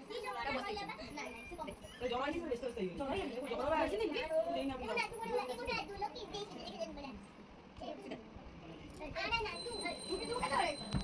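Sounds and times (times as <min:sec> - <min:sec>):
children talking and calling: 0:00.0 - 0:11.0.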